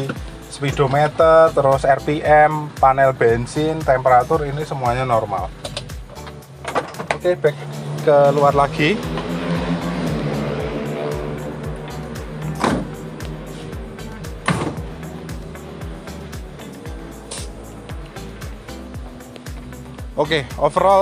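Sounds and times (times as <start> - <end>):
music with steady beat: 0.0 - 21.0
sharp knocks: 12.4 - 13.3, 14.4 - 15.0.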